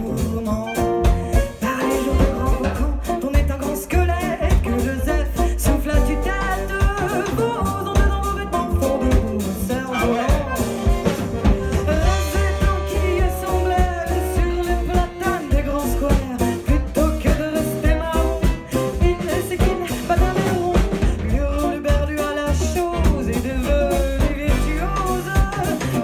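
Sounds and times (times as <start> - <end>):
acoustic guitar: 0.0 - 26.0
double bass: 0.0 - 26.0
drum kit beat: 0.0 - 26.0
woman singing: 0.0 - 26.0
accordion: 0.8 - 26.0.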